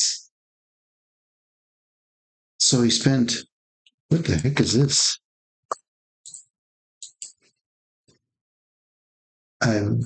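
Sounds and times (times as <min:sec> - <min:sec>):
man speaking: 0:04.1 - 0:05.2.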